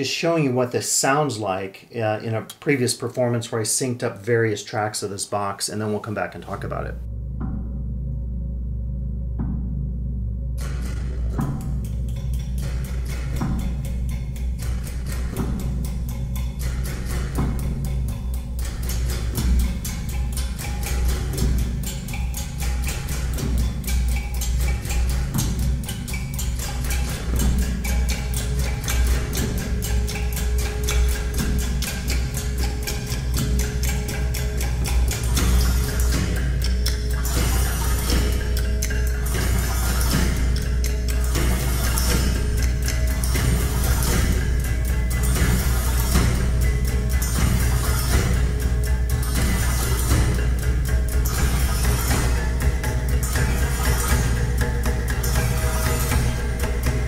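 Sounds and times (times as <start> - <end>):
deep resonant low drone: 7.0 - 57.0
metallic strikes on springs: 10.6 - 57.0.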